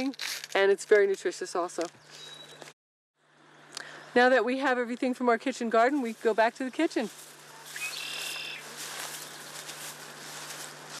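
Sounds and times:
steady outdoor hiss: 0:03.2 - 0:11.0
bird call: 0:07.6 - 0:09.4.

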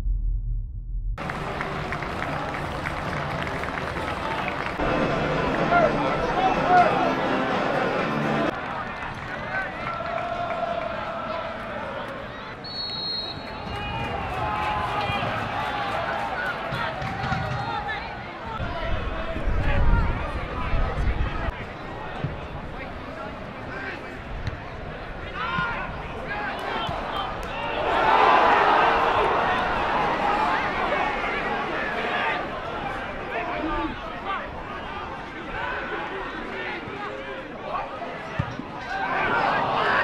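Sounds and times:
low rumble: 0:00.0 - 0:01.6
crowd shouting and calling: 0:01.2 - 0:12.7, 0:13.3 - 0:40.0.

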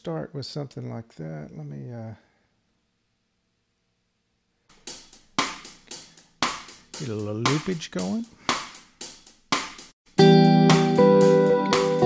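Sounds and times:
drum loop with hi-hat and cymbal: 0:04.7 - 0:12.0.

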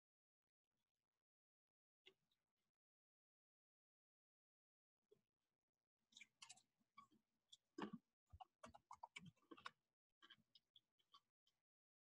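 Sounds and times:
faint clicks and ticks: 0:06.1 - 0:11.7.

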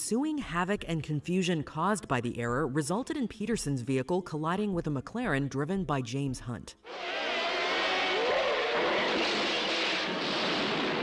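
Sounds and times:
racing car engines rushing: 0:06.9 - 0:11.0.

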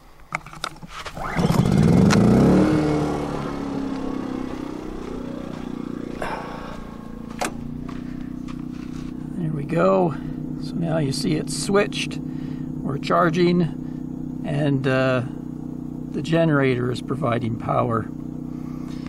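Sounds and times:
generator engine starting and running: 0:00.6 - 0:19.0.

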